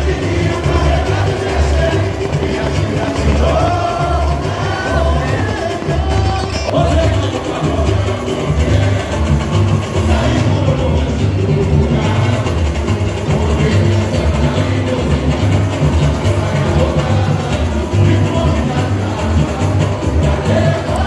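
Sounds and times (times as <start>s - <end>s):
samba drums: 0.0s - 21.0s
sung melody over loudspeakers: 0.0s - 21.0s.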